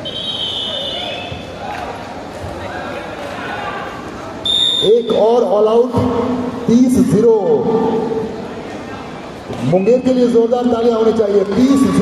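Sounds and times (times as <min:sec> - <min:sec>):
referee's whistle: 0:00.0 - 0:01.6, 0:04.4 - 0:05.2
crowd chatter and shouts: 0:00.0 - 0:12.0.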